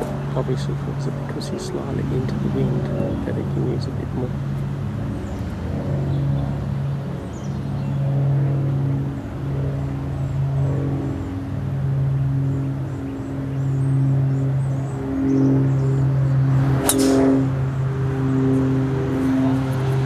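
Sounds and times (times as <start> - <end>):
steady low hum: 0.0 - 20.0
golf club striking ball: 16.7 - 17.5.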